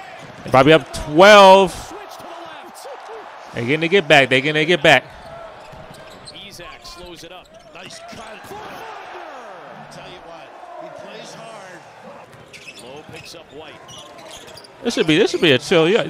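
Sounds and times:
commentators talking: 0.4s - 5.2s, 6.3s - 12.1s.

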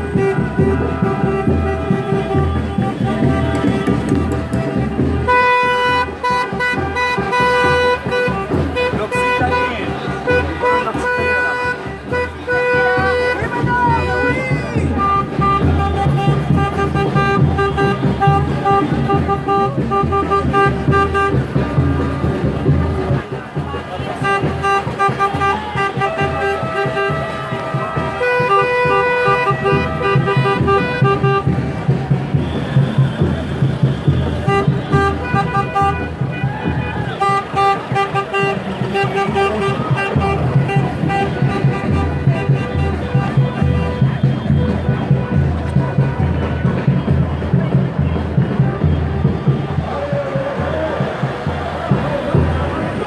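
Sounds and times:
vehicle horns honking: 0.0s - 50.1s
samba band drumming: 0.0s - 53.0s.

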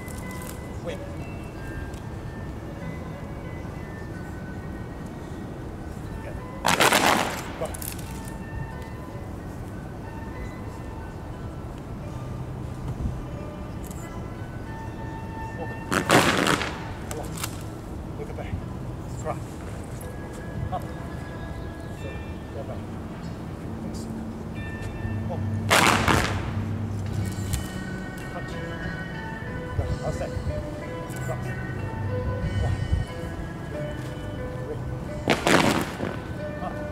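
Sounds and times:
faint background music: 0.0s - 36.9s
low wind rumble: 0.0s - 36.9s.

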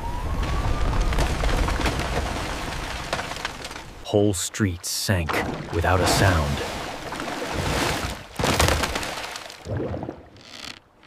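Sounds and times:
cracks and crashing debris: 0.1s - 4.1s, 7.7s - 9.7s.

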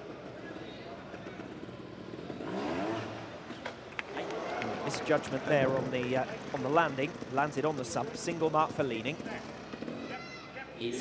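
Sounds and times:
motorcycle engine revving: 0.0s - 10.2s
indoor arena background noise: 0.0s - 11.0s.

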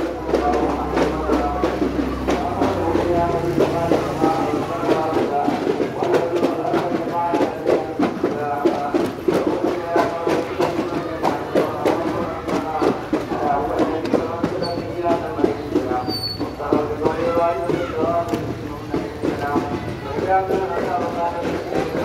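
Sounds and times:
crowd singing or chanting: 0.0s - 22.0s
sharp drum strokes: 0.0s - 22.0s.

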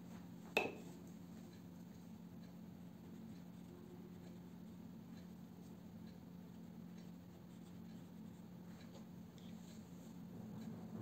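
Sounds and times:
steady low hum: 0.0s - 11.0s
paintbrush scratching paper: 6.5s - 10.1s.

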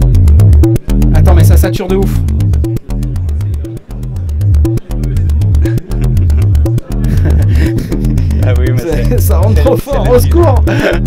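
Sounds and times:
distorted low plucked synth notes: 0.0s - 11.0s.

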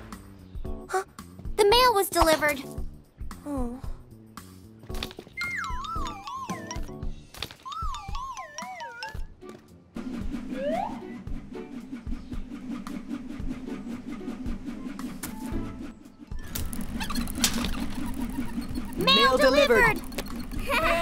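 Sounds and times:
cartoon background music: 0.0s - 21.0s
rising whistle sound effect: 10.4s - 11.3s.

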